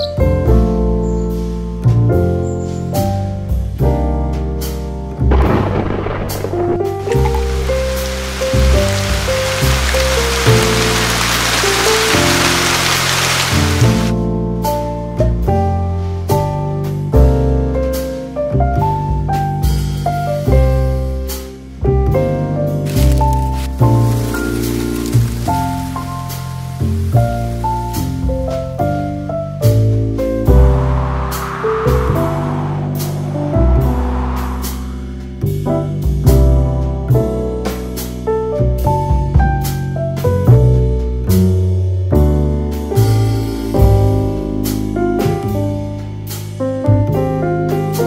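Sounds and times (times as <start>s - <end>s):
slow melodic music with bass: 0.0s - 31.1s, 34.8s - 48.0s
rain falling: 5.3s - 14.1s, 22.8s - 29.1s
steady hiss: 7.1s - 14.1s, 23.0s - 28.5s
music of sustained chords: 7.2s - 14.1s.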